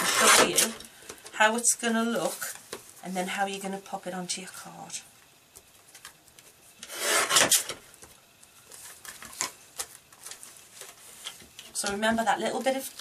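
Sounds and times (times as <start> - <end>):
paper trimmer blade scraping: 0.0 - 0.8, 6.8 - 7.8.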